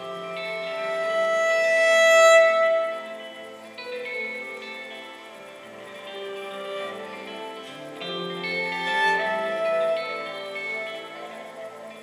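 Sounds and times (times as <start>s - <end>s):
guitar playing: 0.0s - 12.0s
bowed cello notes: 5.2s - 12.0s.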